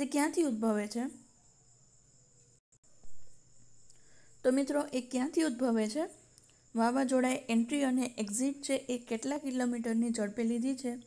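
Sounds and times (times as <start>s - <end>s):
faint high-pitched background tone: 0.0s - 11.0s.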